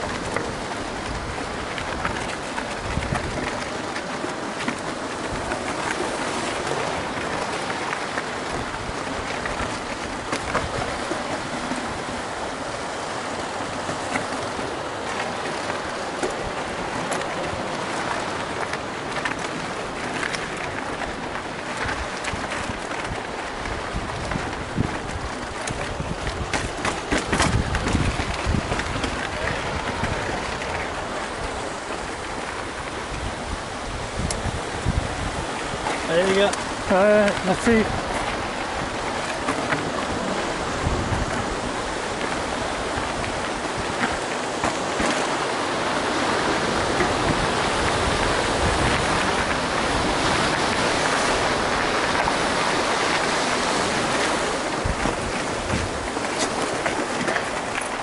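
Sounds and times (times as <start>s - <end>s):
wind rush on microphone: 0.0s - 58.0s
bike rattling: 18.5s - 33.5s
tyres crackling over gravel: 35.9s - 40.6s.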